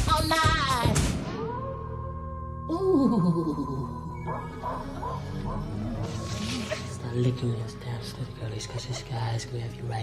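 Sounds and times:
background music with held tone: 0:00.0 - 0:10.0.

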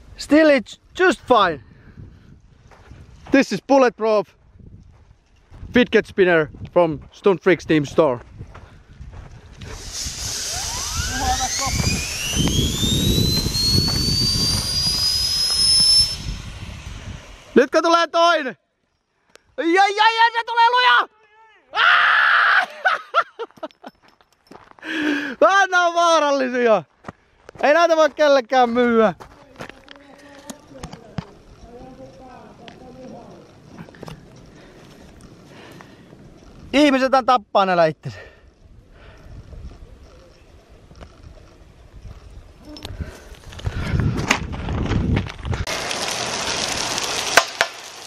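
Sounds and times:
high whine rising in pitch: 0:09.7 - 0:17.8.

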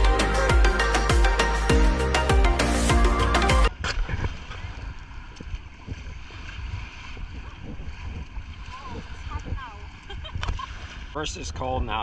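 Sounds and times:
wind buffeting microphone: 0:03.7 - 0:11.2
small waves washing onto sand: 0:04.1 - 0:12.0.

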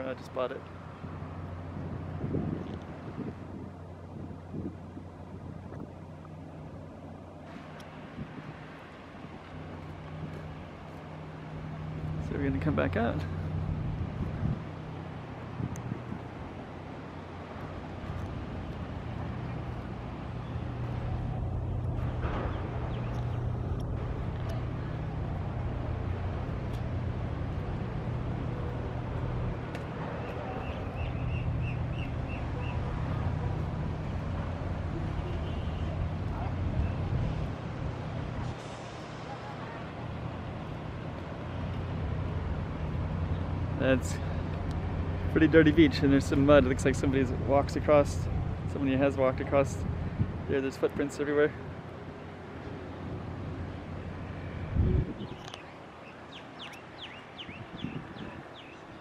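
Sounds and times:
city road traffic rumble: 0:00.0 - 0:59.0.

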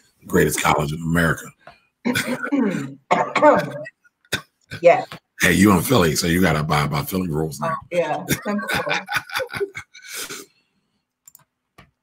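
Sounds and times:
person laughing: 0:00.4 - 0:01.3, 0:02.1 - 0:03.9, 0:07.6 - 0:10.4
person clearing throat: 0:02.1 - 0:03.9.

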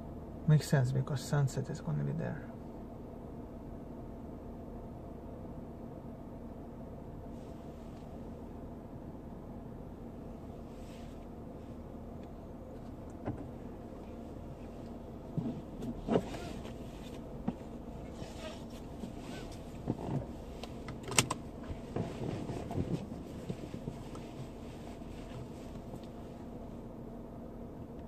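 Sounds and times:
low hum inside a car: 0:00.0 - 0:28.0
clicks and knocks in car cabin: 0:12.2 - 0:24.6.

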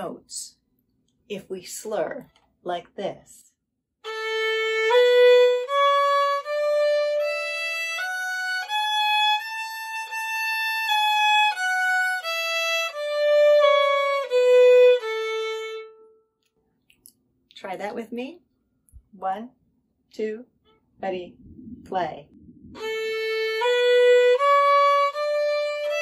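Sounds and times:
violin playing a scale: 0:04.0 - 0:16.2, 0:22.8 - 0:26.0.

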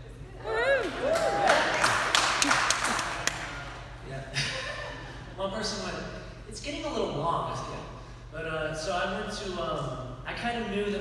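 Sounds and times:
scattered claps: 0:00.9 - 0:03.7.

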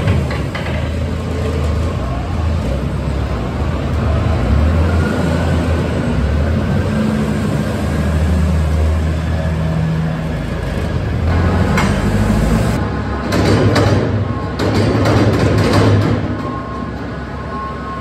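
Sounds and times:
loader diesel engine under load: 0:00.0 - 0:18.0.

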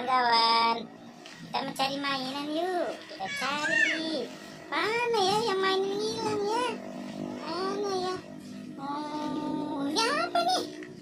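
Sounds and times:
music: 0:00.0 - 0:11.0
child singing: 0:01.5 - 0:06.8, 0:07.4 - 0:10.8.

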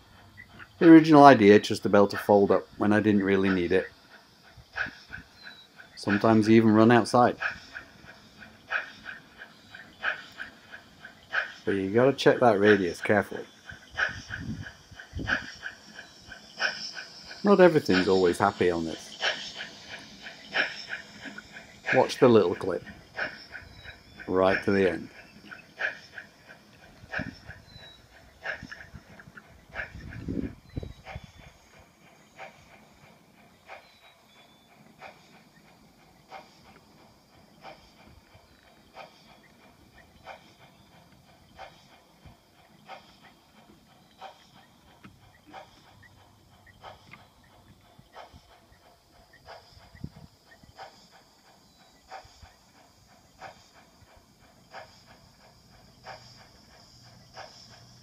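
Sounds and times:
model train running on track: 0:00.0 - 0:58.0
faint regular clicking: 0:40.2 - 0:49.9.

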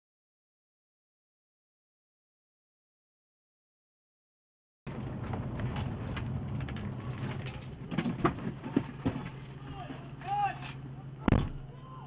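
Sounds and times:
people shouting: 0:09.6 - 0:12.0
loud thump: 0:11.2 - 0:11.7.

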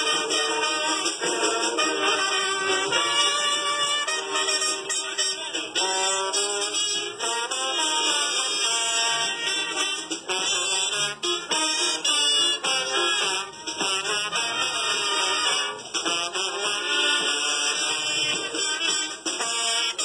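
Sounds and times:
brass marching band playing: 0:00.0 - 0:20.0.

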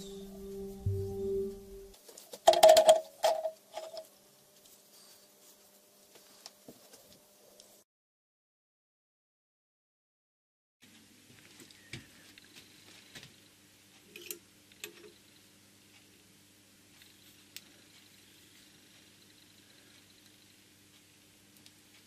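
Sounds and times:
faint steady hum: 0:00.0 - 0:07.8, 0:10.8 - 0:22.0.

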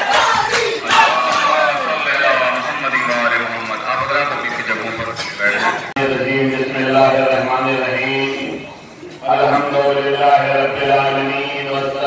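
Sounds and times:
men chanting together: 0:00.0 - 0:02.9, 0:06.0 - 0:12.0.

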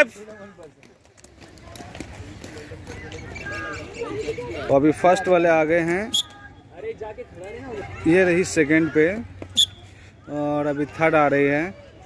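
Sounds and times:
light clicks of skate strides: 0:00.0 - 0:03.9
skate wheels rolling: 0:00.0 - 0:04.7
faint voices: 0:00.0 - 0:12.0.

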